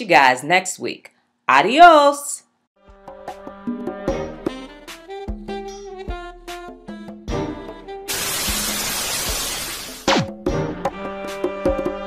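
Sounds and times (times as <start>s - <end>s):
crashing transition sound effect: 8.1s - 10.3s.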